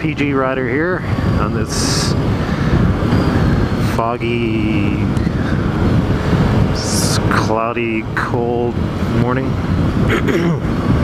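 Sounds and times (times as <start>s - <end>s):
road noise: 0.0s - 11.0s
wind rush: 0.0s - 11.0s.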